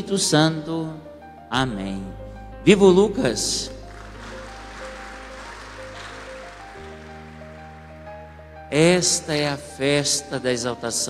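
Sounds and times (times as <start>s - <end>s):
soft keyboard chords: 0.0s - 11.0s
congregation applauding: 3.8s - 9.4s.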